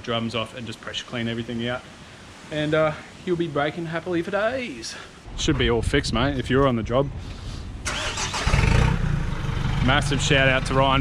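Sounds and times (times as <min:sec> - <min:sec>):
vehicle engine running: 0:08.6 - 0:11.0.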